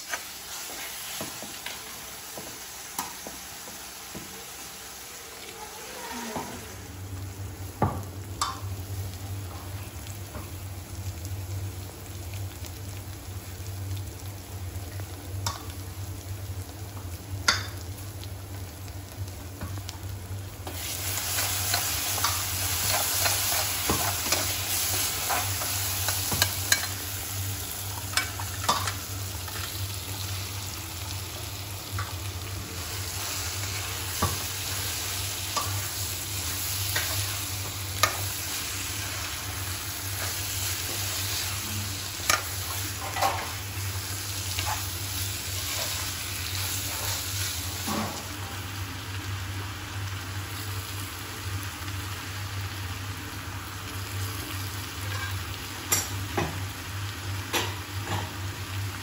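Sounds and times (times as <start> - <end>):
masala sizzling in a pan: 0.0 - 59.0.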